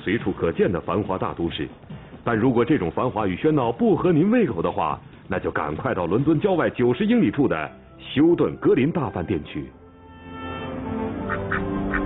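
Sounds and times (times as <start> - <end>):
background music with held notes: 6.2 - 12.0
ducks quacking: 10.5 - 12.0.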